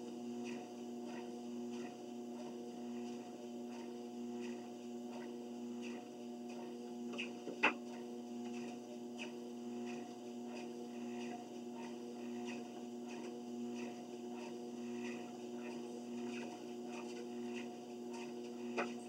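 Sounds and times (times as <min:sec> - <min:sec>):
treadmill motor hum: 0:00.0 - 0:19.0.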